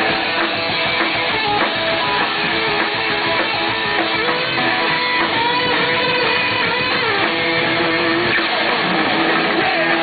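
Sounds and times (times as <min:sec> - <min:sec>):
punk rock band playing live: 0:00.0 - 0:10.0.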